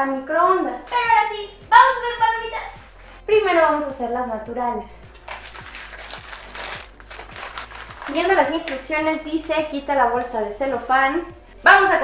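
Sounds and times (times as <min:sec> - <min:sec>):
popcorn box and paper bag rustling: 0:05.2 - 0:09.6.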